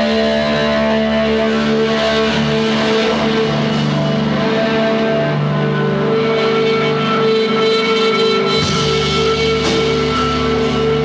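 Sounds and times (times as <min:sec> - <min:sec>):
indie rock band playing: 0:00.0 - 0:11.0.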